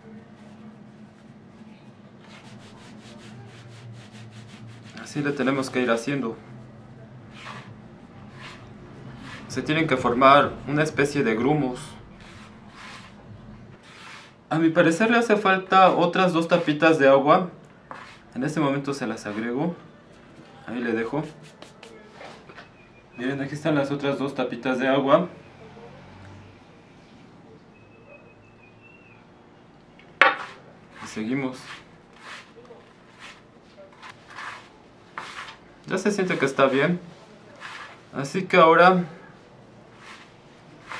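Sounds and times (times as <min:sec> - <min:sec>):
fingers rubbing gritty dough: 0:02.2 - 0:05.8, 0:07.3 - 0:09.7, 0:12.2 - 0:13.2, 0:13.8 - 0:14.4, 0:17.9 - 0:18.3, 0:30.4 - 0:38.1, 0:39.9 - 0:40.9.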